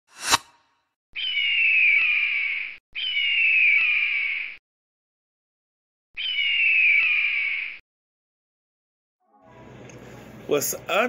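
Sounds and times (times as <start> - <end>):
bird screeching cry: 1.2 - 4.6, 6.2 - 7.8.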